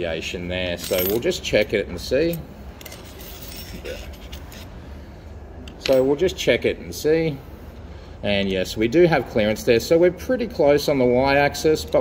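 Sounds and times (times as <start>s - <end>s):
steady low hum: 0.0s - 12.0s
metal key clicking and scraping: 2.3s - 4.7s.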